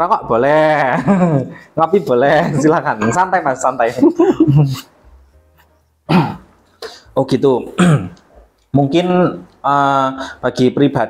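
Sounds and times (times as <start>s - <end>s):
man clearing his throat: 6.1s - 6.5s, 7.8s - 8.2s.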